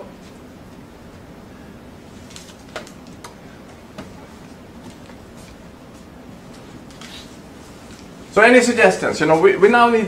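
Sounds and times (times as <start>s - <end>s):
room noise: 0.0s - 10.0s.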